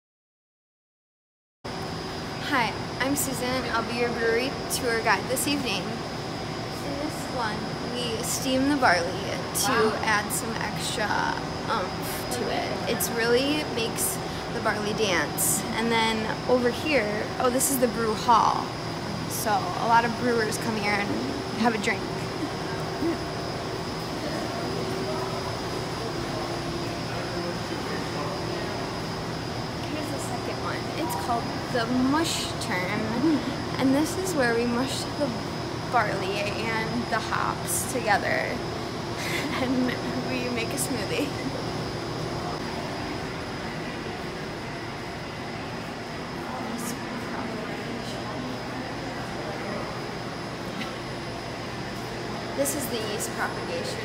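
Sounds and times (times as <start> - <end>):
faint high whine: 1.7 - 54.0
mechanical hum and hiss: 1.7 - 54.0
faint indistinct voices: 6.7 - 54.0.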